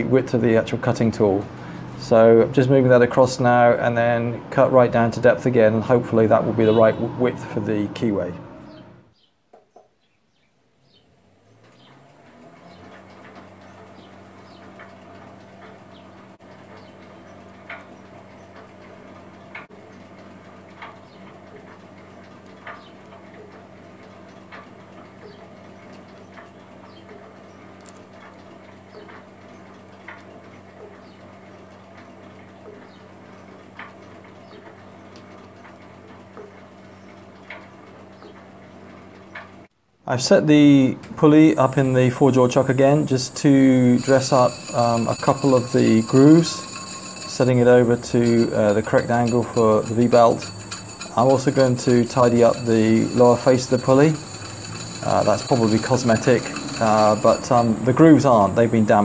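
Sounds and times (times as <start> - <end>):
short cutting ticks: 41.0 - 59.0
metal shaper motor whining: 41.1 - 59.0.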